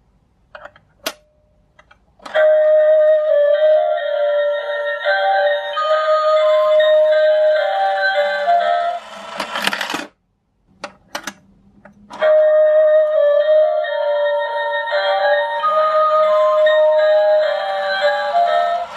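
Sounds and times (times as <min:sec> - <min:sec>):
faint motor hum: 0:01.2 - 0:18.9.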